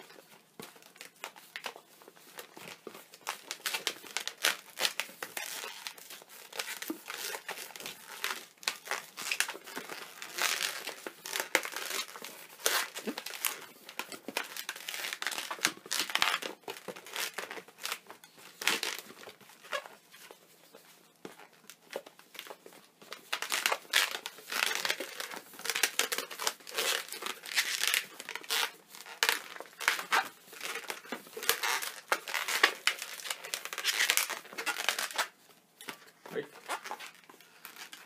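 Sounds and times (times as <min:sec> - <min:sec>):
balloons squeaking: 0:00.0 - 0:38.0.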